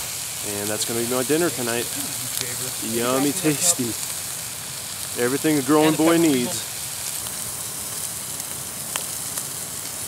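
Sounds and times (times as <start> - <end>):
sausage sizzling in a frying pan: 0.0 - 10.0.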